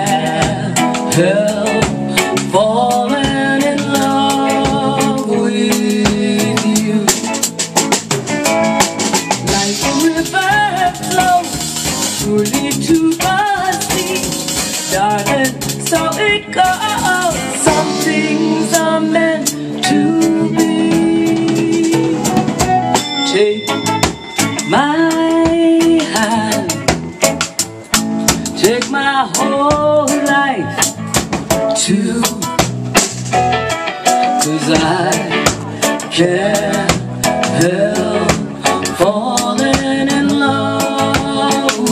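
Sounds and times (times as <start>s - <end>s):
woman singing: 0.0s - 7.7s, 9.4s - 27.2s, 28.3s - 31.1s, 31.7s - 32.7s, 34.2s - 41.9s
drum kit beat: 0.0s - 41.9s
live band playing: 0.0s - 41.9s.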